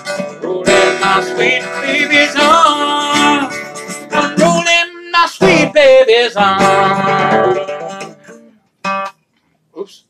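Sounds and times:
acoustic guitar strumming: 0.0 - 9.3.

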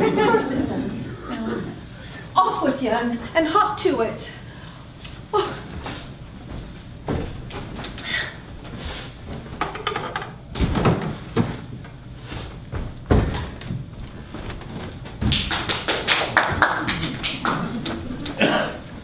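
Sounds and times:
knocks and thuds on stage: 12.7 - 15.6.

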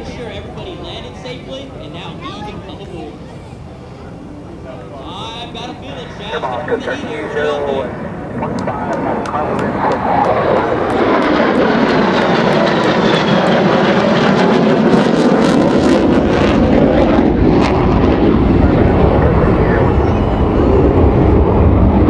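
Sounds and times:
jet engine flying overhead: 0.0 - 22.0
high whine falling in pitch: 5.1 - 15.2
deep rumble: 6.2 - 22.0.

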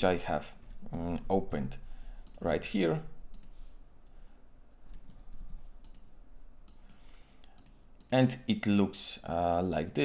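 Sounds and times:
computer mouse clicks: 2.2 - 2.5, 3.3 - 3.6, 4.7 - 8.2.

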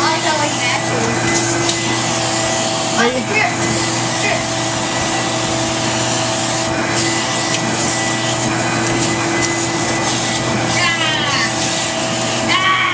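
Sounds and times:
vacuum cleaner running: 0.0 - 12.9.

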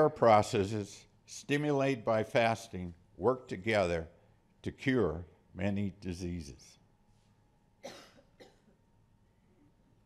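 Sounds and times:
person coughing: 7.8 - 8.8.

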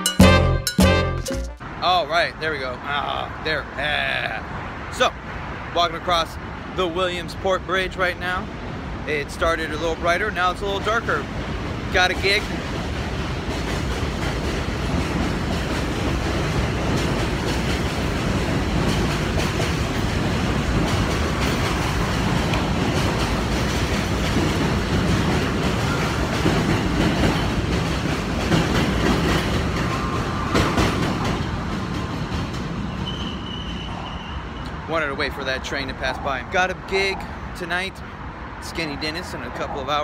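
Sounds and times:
subway train wheels clattering: 9.4 - 34.8
high wheel squeal: 32.8 - 34.8.

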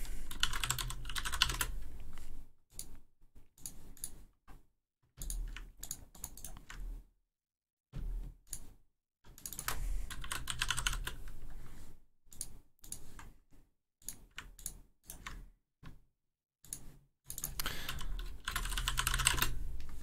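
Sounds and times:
computer keyboard typing: 0.1 - 2.9, 5.2 - 6.9, 9.4 - 11.3, 14.0 - 15.5, 16.6 - 19.8.

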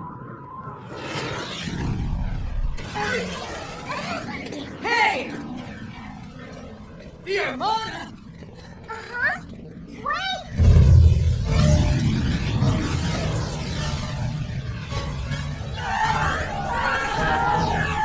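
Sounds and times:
loud low rumble: 10.5 - 15.8.

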